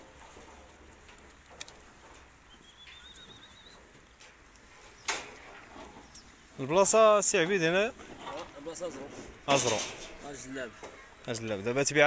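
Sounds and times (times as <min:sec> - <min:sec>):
faint shuffling: 0:00.0 - 0:12.0
warbling bird trill: 0:02.5 - 0:03.8.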